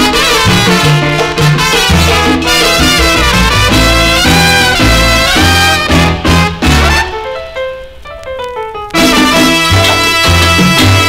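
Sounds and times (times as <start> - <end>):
latin jazz band playing: 0.0 - 11.0
solo piano line: 2.2 - 9.0.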